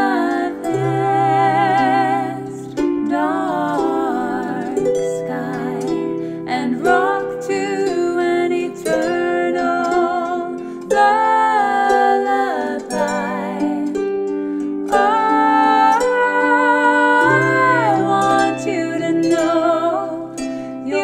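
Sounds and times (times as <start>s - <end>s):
woman singing with vibrato: 0.0s - 14.0s, 14.9s - 21.0s
harp plucked gently: 0.0s - 21.0s.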